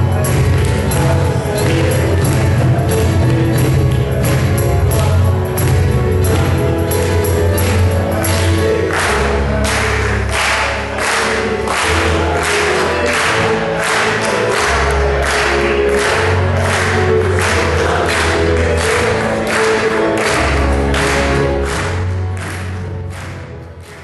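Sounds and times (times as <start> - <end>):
men singing together: 0.0 - 21.6
electronic keyboard playing: 0.0 - 24.0
hand claps: 0.0 - 24.0.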